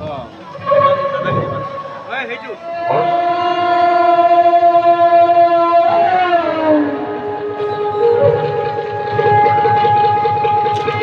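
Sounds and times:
conch shell blown: 0.5 - 11.0.

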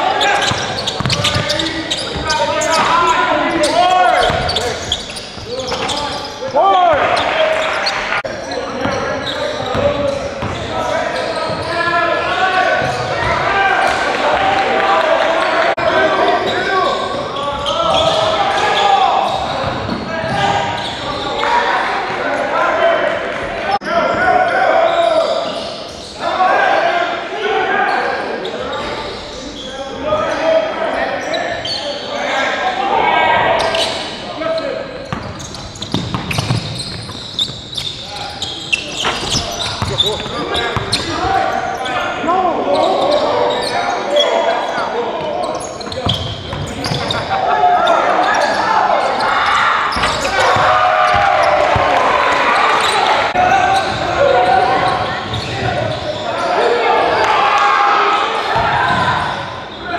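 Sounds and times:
voices talking and calling out: 0.0 - 59.9.

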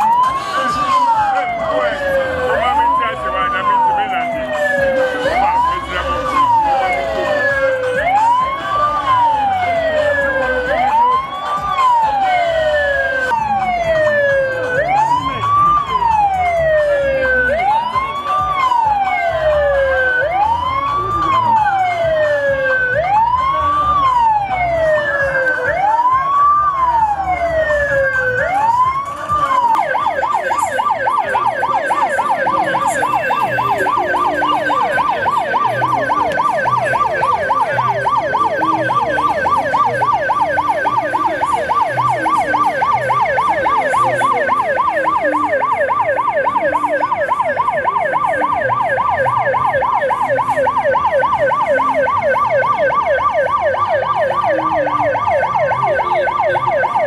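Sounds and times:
electronic vehicle siren: 0.0 - 57.0.

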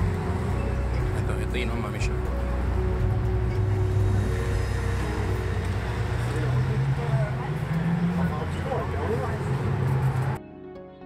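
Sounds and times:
vehicle engines rumbling: 0.0 - 10.4
people talking: 1.2 - 2.1, 6.3 - 9.8.

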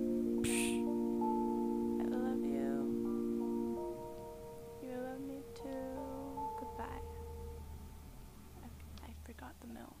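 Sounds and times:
person whispering: 0.4 - 0.9
low hum: 1.9 - 10.0.

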